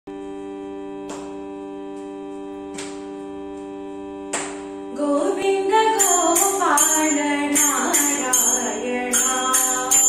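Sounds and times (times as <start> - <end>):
shruti drone: 0.1 - 10.0
sharp metallic strikes: 6.0 - 10.0.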